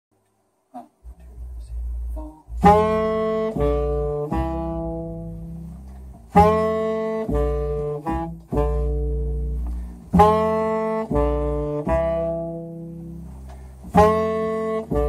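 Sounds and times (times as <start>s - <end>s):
upright double bass: 1.0s - 15.0s
saxophone playing jazz: 1.1s - 15.0s.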